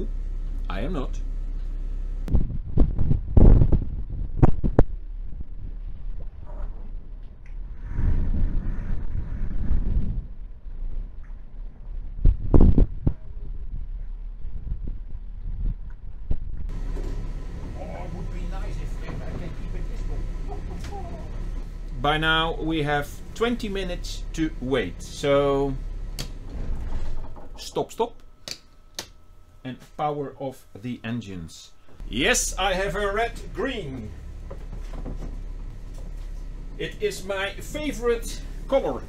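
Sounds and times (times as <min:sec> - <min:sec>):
boat engines humming: 0:00.0 - 0:02.3, 0:16.7 - 0:39.0
loud knocks and thumps: 0:34.1 - 0:36.2.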